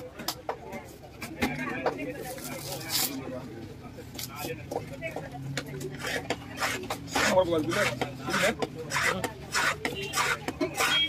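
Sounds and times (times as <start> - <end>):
knife scraping fish on wood: 5.8 - 11.0.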